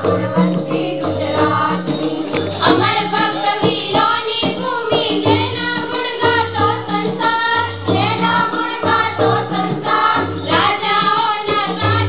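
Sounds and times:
girls singing into a microphone: 0.0 - 12.0
held accompaniment notes: 0.0 - 12.0.

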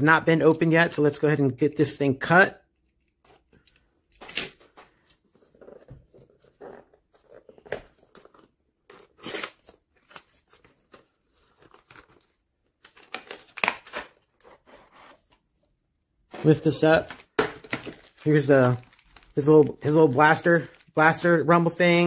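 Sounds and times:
plastic packaging rustling: 16.3 - 21.5.

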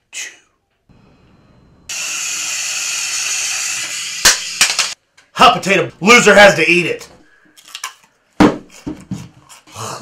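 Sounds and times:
sharp cracks: 4.2 - 5.0.

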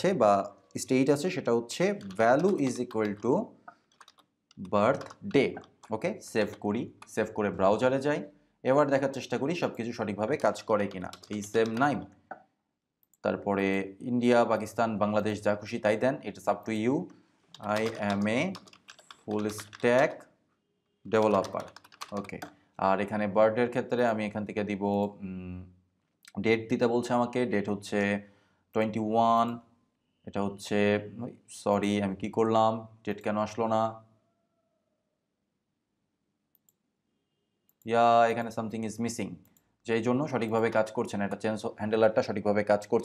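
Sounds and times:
man speaking: 0.0 - 3.7, 4.6 - 12.2, 13.2 - 18.6, 19.3 - 20.2, 21.1 - 25.7, 37.8 - 43.0
typing on computer keyboard: 1.8 - 7.5, 10.2 - 12.0, 17.5 - 20.2, 21.1 - 22.6.

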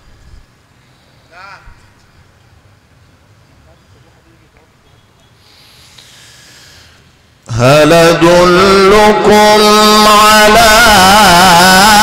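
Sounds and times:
man reciting melodically: 7.4 - 12.0.

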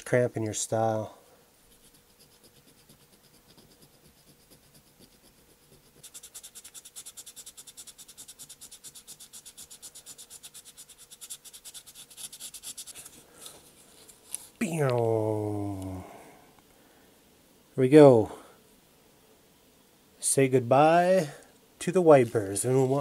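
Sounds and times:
sanding sponge rubbing metal: 1.7 - 13.3.

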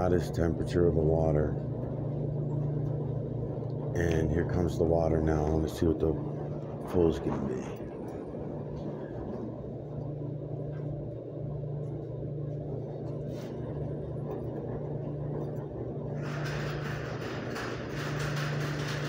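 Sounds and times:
washers and dryers humming: 0.0 - 19.0.

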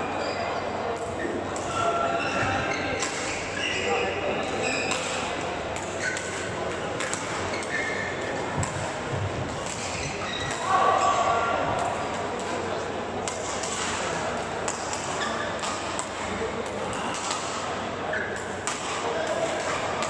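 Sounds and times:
voices echoing in a hall: 0.0 - 20.0
rackets hitting shuttlecocks: 2.9 - 3.5, 4.5 - 12.6, 13.2 - 20.0.

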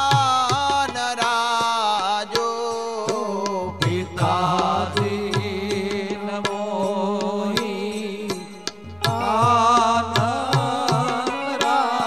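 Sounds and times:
man singing slow melody: 0.0 - 12.0
tabla strokes: 0.0 - 12.0.

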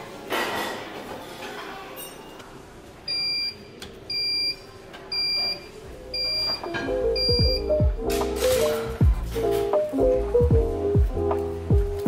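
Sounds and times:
background music: 6.1 - 12.0.

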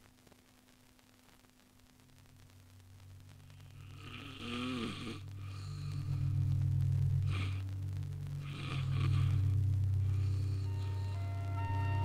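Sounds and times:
steady low hum: 0.0 - 12.0
man snoring: 3.8 - 6.6, 7.2 - 7.7, 8.4 - 11.6.

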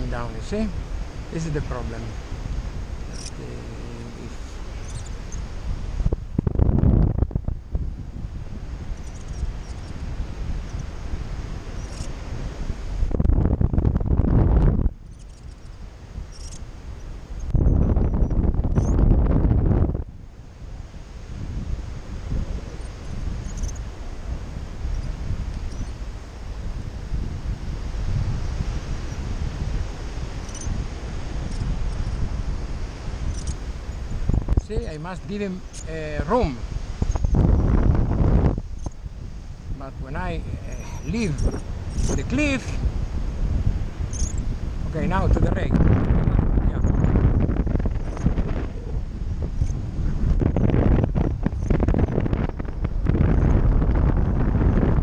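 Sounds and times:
wind gusts buffeting: 0.0 - 55.0
wind rushing over microphone: 0.0 - 55.0.

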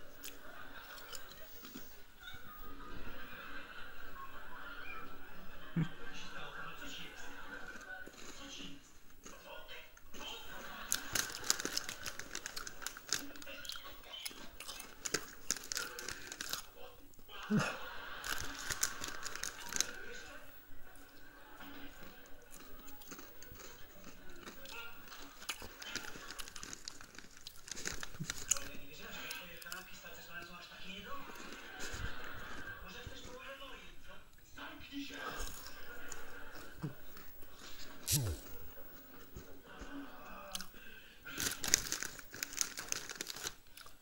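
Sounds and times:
man speaking on television: 5.6 - 10.9, 28.5 - 31.5, 38.1 - 38.7.

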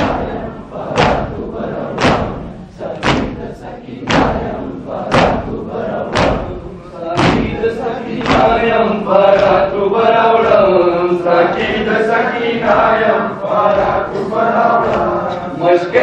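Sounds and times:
chest-beating thumps in unison: 0.0 - 16.0
man chanting over microphones: 0.0 - 16.0.

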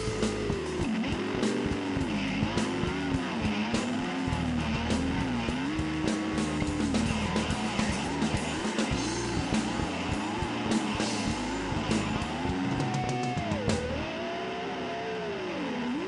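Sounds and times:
bass guitar: 0.0 - 14.2
drums: 0.0 - 14.3
electric guitar bending notes: 0.0 - 16.0.

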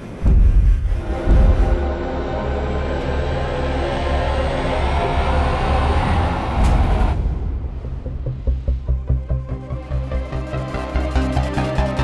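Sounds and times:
deep rumbling rush: 0.0 - 11.6.

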